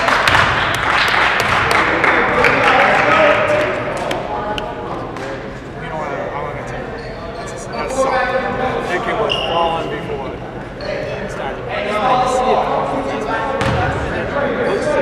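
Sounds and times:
echoing voices: 0.0 - 15.0.

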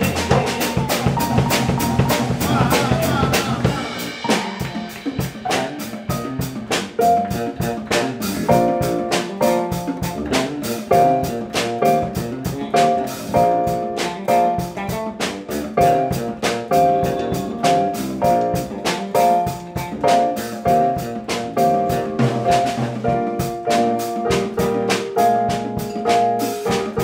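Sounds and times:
drum kit hi-hat beat: 0.0 - 27.0
electric bass: 0.0 - 27.0
keyboard chord stabs: 0.0 - 27.0.

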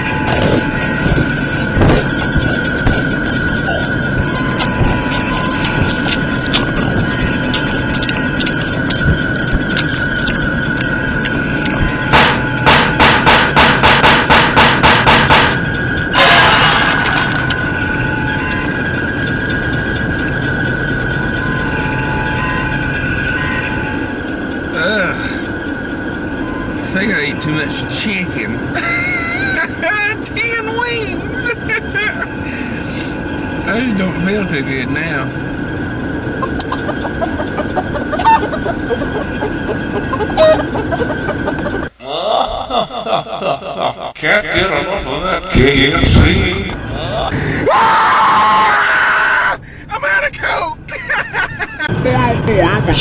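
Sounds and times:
sharp percussive hits: 12.1 - 15.6
chicken clucking and squawking: 36.4 - 42.0
car cabin road noise: 50.0 - 53.0.

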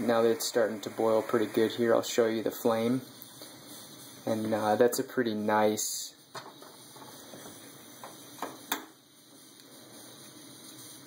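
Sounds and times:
stove burner hissing: 0.0 - 11.0.

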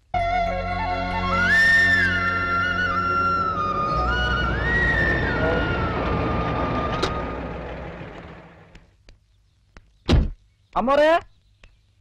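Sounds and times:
truck engine running: 2.0 - 8.9.

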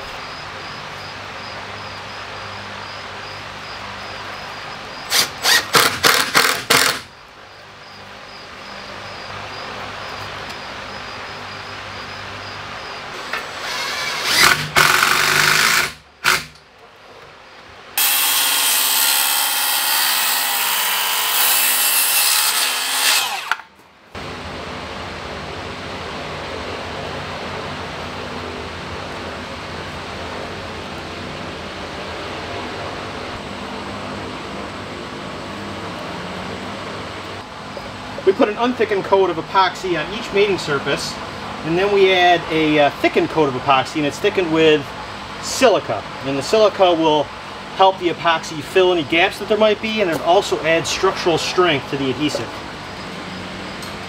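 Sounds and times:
cordless drill driving screw: 5.1 - 7.0, 13.2 - 16.6, 18.0 - 23.6
power tool bursts: 5.1 - 7.1, 13.2 - 16.6, 18.0 - 23.7
circular saw cutting wood: 13.2 - 16.5, 18.0 - 23.7.

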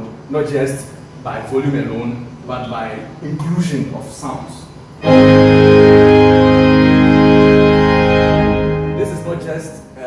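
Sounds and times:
organ chord sustained: 5.0 - 10.0.

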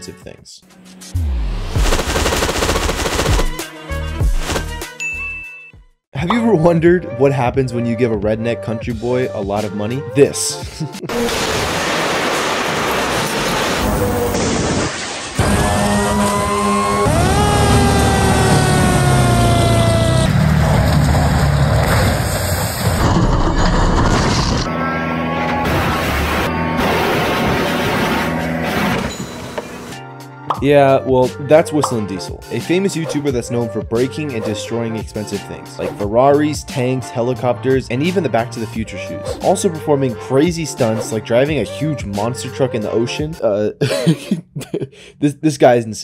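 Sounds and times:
short clear high ding: 5.0 - 6.6
dense loud burst: 11.1 - 24.7
deep falling bass sweeps: 15.4 - 28.9
fire truck whine: 15.4 - 30.0
fire truck engine rumble: 15.5 - 24.7.

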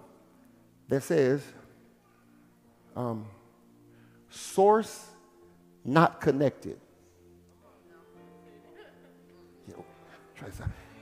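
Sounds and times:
faint soft held chord: 0.0 - 11.0.

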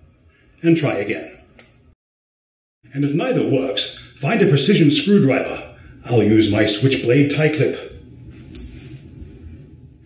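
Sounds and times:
low steady hum: 2.9 - 10.0.

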